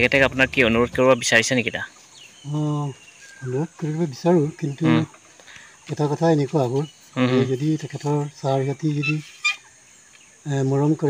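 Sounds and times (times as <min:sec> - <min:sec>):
man speaking: 0:00.0 - 0:01.9, 0:02.5 - 0:05.2, 0:05.9 - 0:09.3, 0:10.5 - 0:11.0
high bird chirp: 0:00.0 - 0:11.0.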